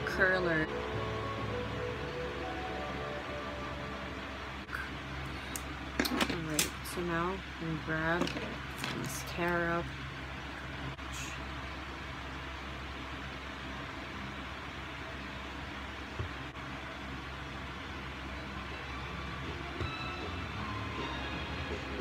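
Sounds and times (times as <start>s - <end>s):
low hum with hiss: 0.0s - 22.0s.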